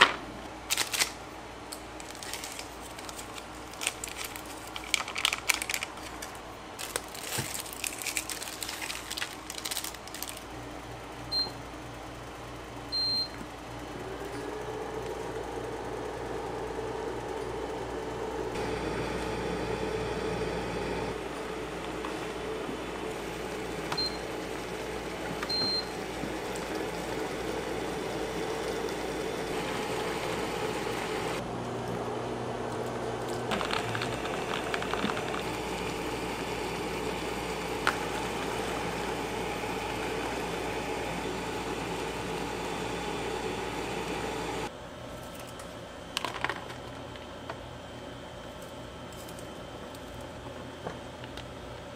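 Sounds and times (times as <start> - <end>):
cooker humming: 0.0 - 45.0
cooker button beeps: 11.3 - 11.6, 13.0 - 13.4, 23.9 - 24.3, 25.4 - 25.9.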